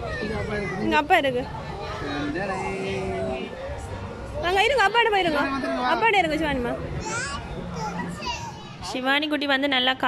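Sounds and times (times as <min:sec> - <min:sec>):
children calling and chattering: 0:00.0 - 0:09.3.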